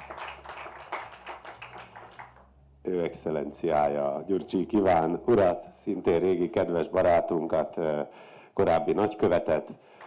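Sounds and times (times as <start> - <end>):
audience applauding: 0.0 - 2.4.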